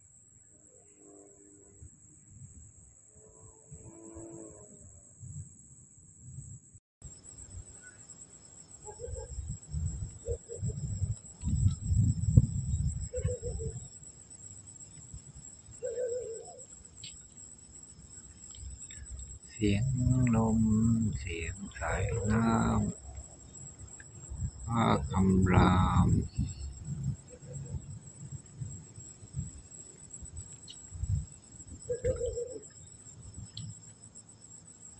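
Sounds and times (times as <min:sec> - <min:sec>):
high insect chorus: 0:00.0 - 0:34.9
wind rumbling on microphone: 0:01.7 - 0:02.9, 0:08.9 - 0:15.9, 0:18.5 - 0:33.9
short calls: 0:18.9 - 0:23.0, 0:24.7 - 0:26.6.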